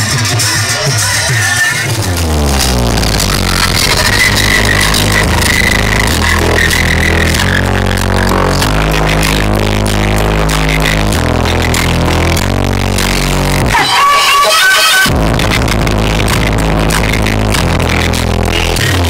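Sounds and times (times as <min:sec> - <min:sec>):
loud dance music: 0:00.0 - 0:19.0.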